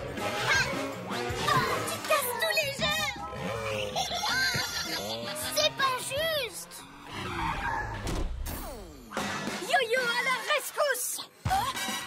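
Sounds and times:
small car engine and skid: 4.6 - 8.1.

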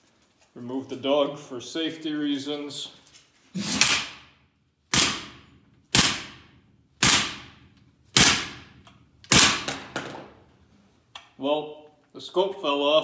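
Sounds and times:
rifle striking concrete floor: 3.8 - 10.6.

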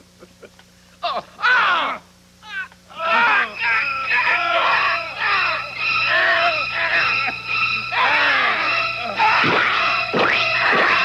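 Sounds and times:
man screaming in pain: 1.0 - 3.5.

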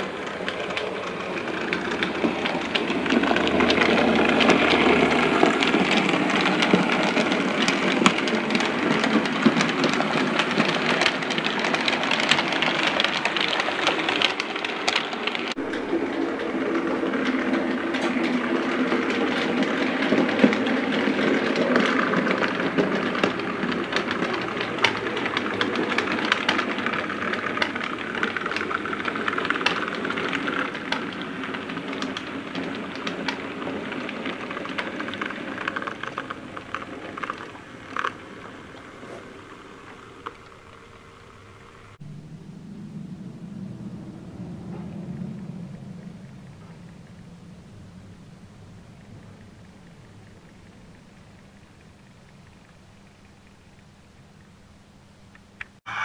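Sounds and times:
model train wheels clattering on track: 0.0 - 42.0.

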